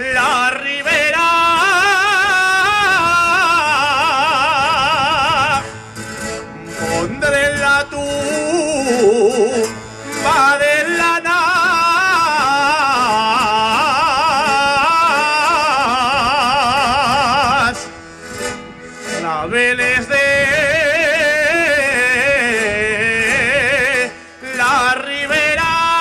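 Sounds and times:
man singing with vibrato: 0:00.0 - 0:26.0.

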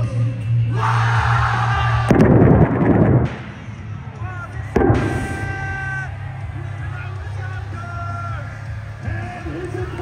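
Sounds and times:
pyrotechnic blast: 0:02.1 - 0:03.7, 0:04.7 - 0:06.1
entrance music: 0:02.1 - 0:07.3
sharp bang: 0:04.8 - 0:06.1.

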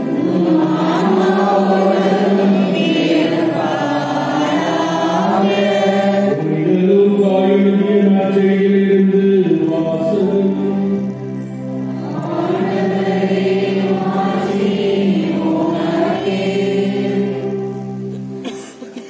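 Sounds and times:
voices singing liturgical chant: 0:00.0 - 0:18.1.

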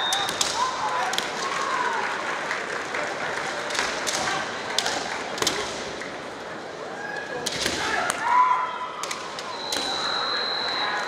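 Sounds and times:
spectators applauding: 0:00.0 - 0:05.4
bamboo sword clack: 0:03.7 - 0:05.9.

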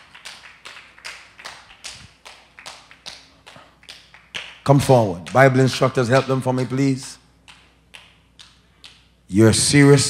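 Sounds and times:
rhythmic hand clapping: 0:00.0 - 0:09.3.

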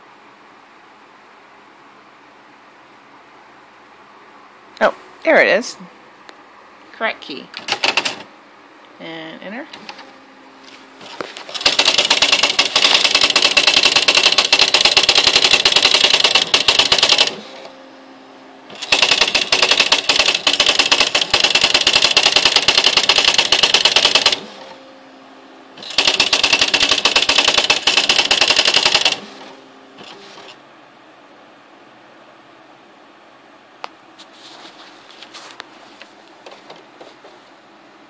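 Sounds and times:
faint steady hum: 0:00.0 - 0:11.6, 0:12.4 - 0:38.0
typewriter print strikes: 0:07.6 - 0:08.3, 0:11.5 - 0:17.7, 0:18.7 - 0:24.7, 0:25.8 - 0:30.6.

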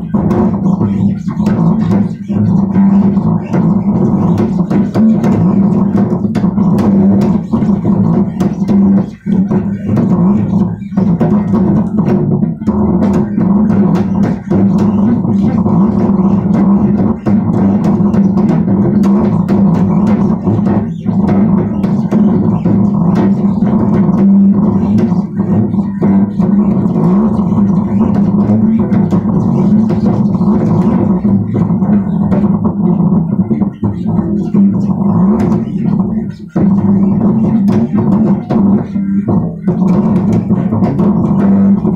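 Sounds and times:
bass guitar plucked notes: 0:00.0 - 0:41.9.

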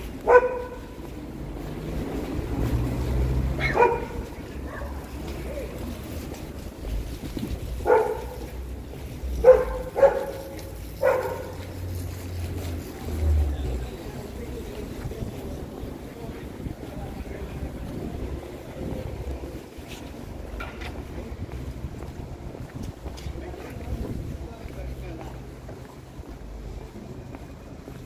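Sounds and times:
rumble of passing traffic: 0:00.0 - 0:28.0
dog barking: 0:00.2 - 0:01.0, 0:03.6 - 0:05.1, 0:07.8 - 0:08.6, 0:09.4 - 0:11.7
wind on microphone: 0:06.5 - 0:08.2, 0:14.8 - 0:19.8, 0:20.9 - 0:24.6.

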